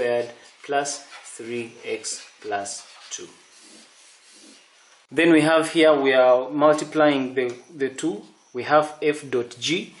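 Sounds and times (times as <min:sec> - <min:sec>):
marker scratching on paper: 0:00.0 - 0:04.9.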